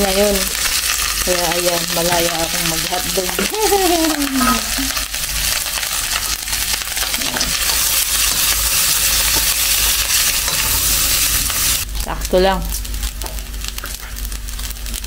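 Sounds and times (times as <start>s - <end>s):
rice sizzling in a wok: 0.0s - 15.0s
spatula scraping a pan: 6.2s - 11.8s.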